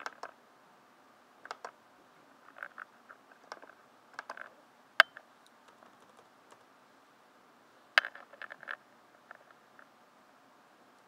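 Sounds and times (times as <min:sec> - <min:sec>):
computer keyboard keystrokes: 0:01.4 - 0:01.8, 0:03.4 - 0:05.1, 0:05.7 - 0:06.6.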